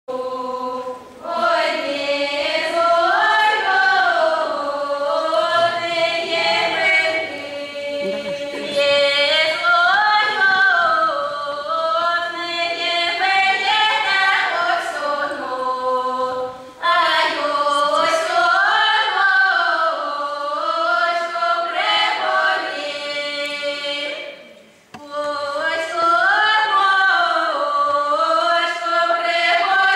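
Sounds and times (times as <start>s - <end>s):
children singing unaccompanied: 0.1s - 29.9s.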